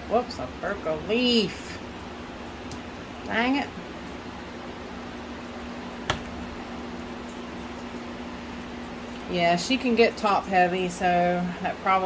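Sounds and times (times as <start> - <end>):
steady low machine hum: 0.0 - 12.0.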